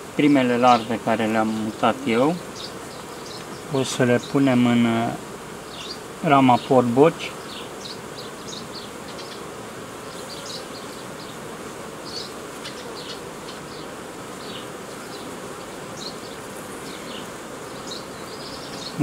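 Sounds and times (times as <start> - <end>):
honeybees buzzing: 0.0 - 19.0.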